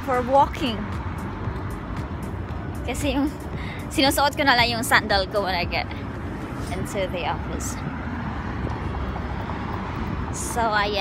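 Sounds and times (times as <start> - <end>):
traffic rumble: 0.0 - 11.0
wind: 0.0 - 11.0.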